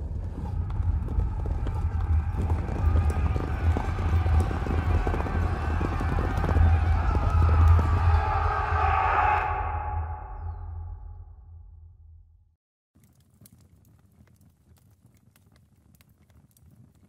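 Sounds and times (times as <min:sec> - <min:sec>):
horses' hooves clip-clopping: 0:00.0 - 0:08.2, 0:13.0 - 0:17.0
low rumble: 0:00.0 - 0:12.6.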